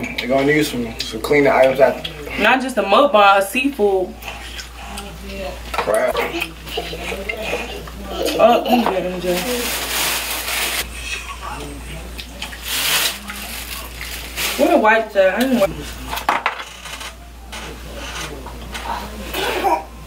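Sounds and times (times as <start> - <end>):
plastic bag rustling: 8.6 - 10.9, 12.5 - 16.0.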